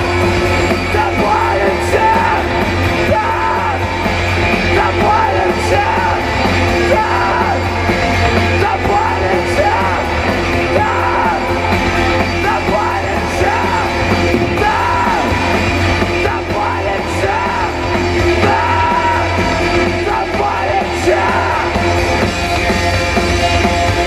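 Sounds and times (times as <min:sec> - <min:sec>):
live rock band: 0:00.0 - 0:24.0.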